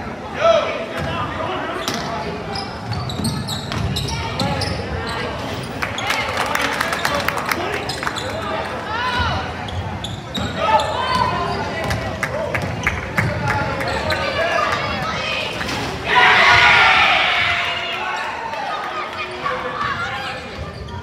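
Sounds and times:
people shouting: 0:16.0 - 0:18.1.

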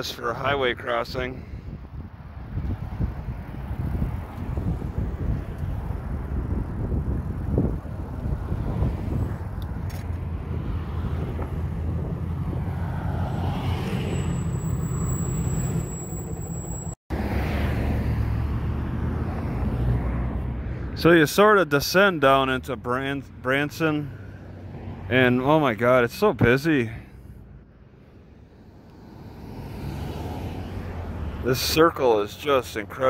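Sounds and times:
highway traffic passing: 0:00.0 - 0:33.0.

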